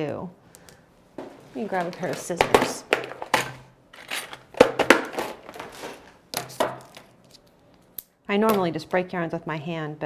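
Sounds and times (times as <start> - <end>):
rummaging in plastic box: 1.6 - 6.2.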